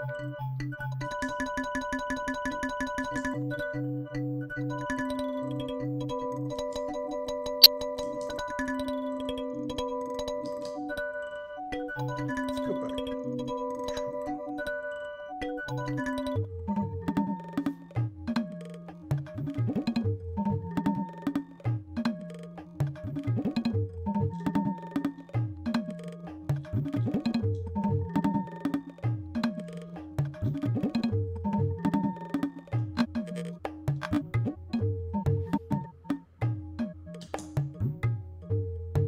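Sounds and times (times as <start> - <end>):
granular tabla loop: 1.0 - 7.7, 8.5 - 39.0.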